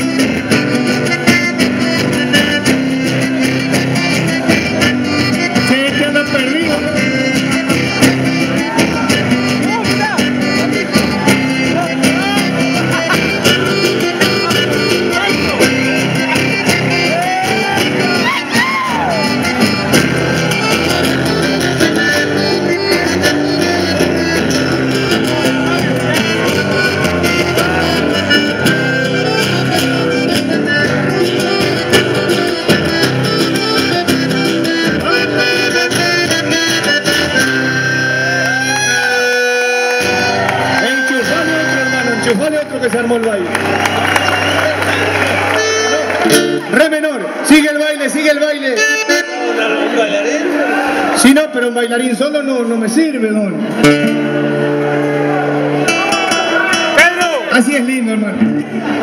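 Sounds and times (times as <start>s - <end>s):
acoustic guitars playing: 0.0s - 59.0s.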